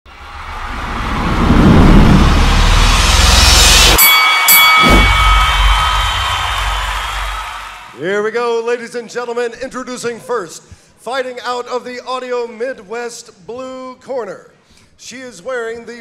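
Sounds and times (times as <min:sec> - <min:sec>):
deep boom: 0:00.1 - 0:04.0, 0:04.8 - 0:07.8
deep rumble: 0:00.1 - 0:04.0
rising whoosh: 0:00.1 - 0:07.8
sudden hit with ringing tones: 0:00.7 - 0:07.4.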